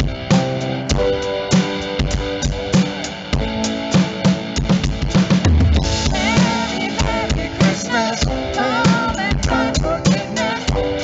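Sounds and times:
rock song with guitar and drums: 0.0 - 11.0.

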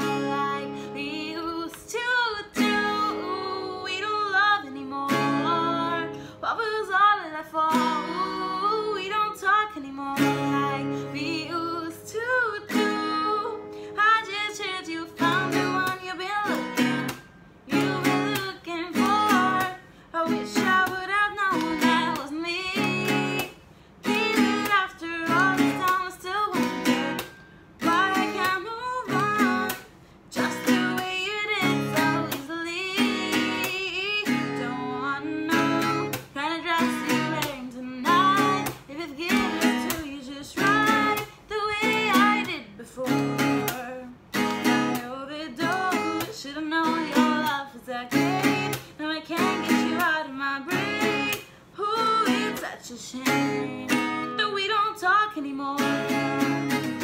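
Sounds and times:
acoustic guitar strumming: 0.0 - 54.8, 55.7 - 57.0
woman singing: 0.0 - 57.0.

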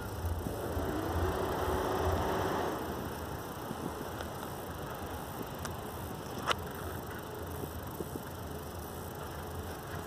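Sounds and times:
faint steady tone: 0.0 - 10.0
vehicle engine humming: 0.0 - 10.0.

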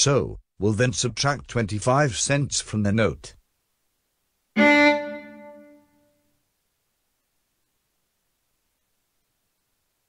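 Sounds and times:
sampled viola note: 4.6 - 6.0.

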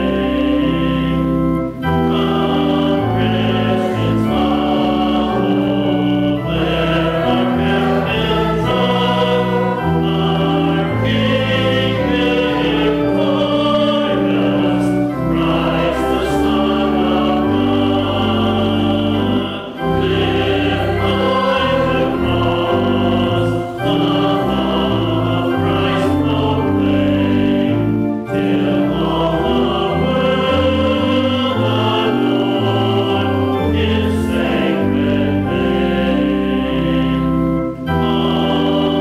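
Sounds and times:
congregation singing a hymn: 0.0 - 39.0
organ chords: 0.0 - 39.0.

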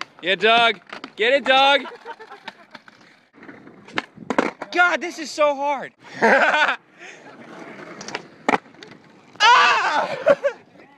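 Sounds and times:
skateboard clack: 0.0 - 5.0, 7.3 - 9.4
skateboard wheels rolling on asphalt: 0.0 - 10.9.

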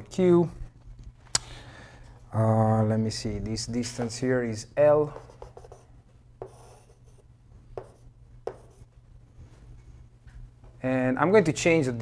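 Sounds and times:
low steady hum: 0.0 - 12.0
chalk tapping on board: 5.1 - 5.8, 6.4 - 7.2, 7.8 - 8.9
chalk scraping on chalkboard: 5.1 - 7.2.

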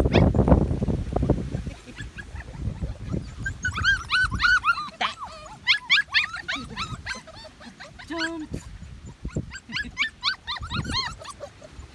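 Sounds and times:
puppies whimpering and yipping: 0.0 - 0.5, 1.1 - 11.9.

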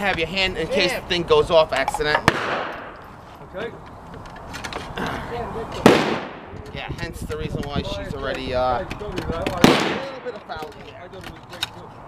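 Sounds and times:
gunshot: 2.2 - 3.0, 5.8 - 6.5, 9.6 - 10.2.

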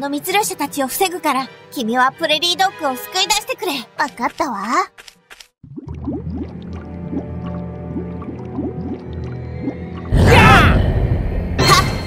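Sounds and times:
cartoon bubble bloops: 5.6 - 10.5.

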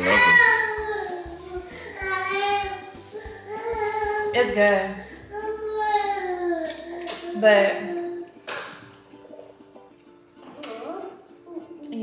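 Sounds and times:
child singing: 0.0 - 4.4, 5.3 - 7.3
faint steady beat: 0.0 - 12.0.

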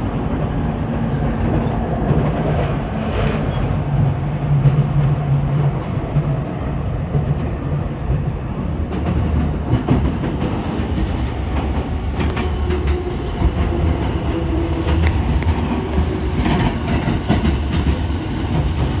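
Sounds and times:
train running rumble: 0.0 - 19.0.

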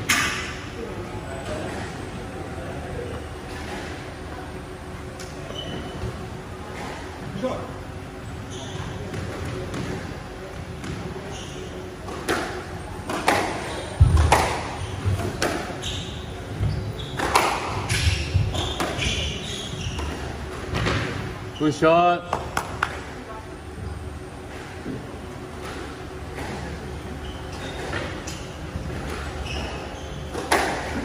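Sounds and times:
shoes squeaking on court floor: 5.2 - 7.5, 8.2 - 22.1, 23.8 - 31.0
squash ball hitting rackets and walls: 9.0 - 11.2, 12.0 - 21.3, 27.5 - 31.0.

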